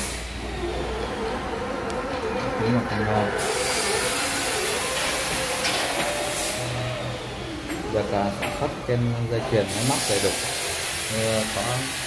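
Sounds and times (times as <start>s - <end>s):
low mechanical rumble: 0.0s - 11.6s.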